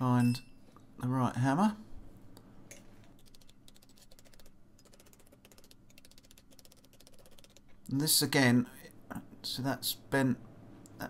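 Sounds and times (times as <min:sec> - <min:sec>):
low steady hum: 0:00.0 - 0:11.0
rapid irregular clicking: 0:03.1 - 0:07.8.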